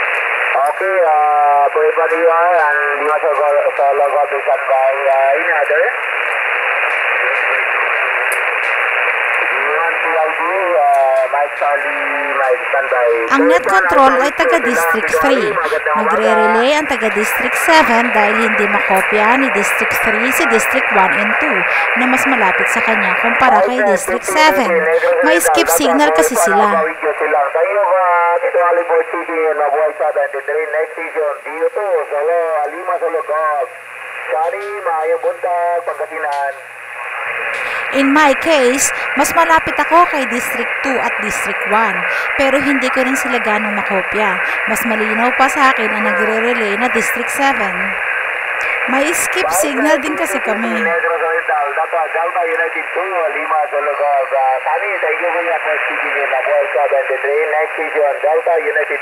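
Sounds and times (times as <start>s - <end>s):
radio band noise hiss: 0.0s - 59.0s
thin narrow-band radio voice: 9.7s - 27.7s, 37.6s - 48.0s, 48.6s - 59.0s.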